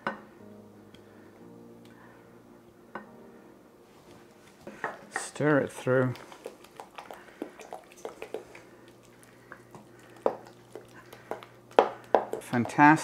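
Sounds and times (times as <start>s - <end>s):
wooden spoon knocking saucepan: 11.2s - 13.0s.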